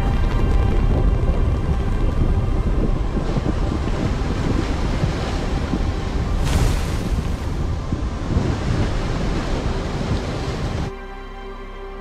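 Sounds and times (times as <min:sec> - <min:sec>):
rushing wind and water: 0:00.0 - 0:12.0.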